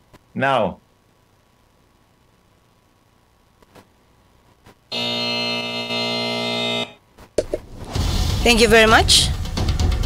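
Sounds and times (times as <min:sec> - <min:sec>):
electronic buzzer tone: 0:04.9 - 0:07.0.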